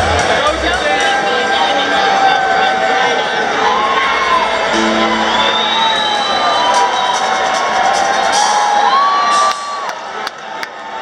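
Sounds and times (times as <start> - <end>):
audience cheering and whooping: 0.8 - 11.0
live band music: 4.7 - 9.8
long high whistle: 4.8 - 7.7.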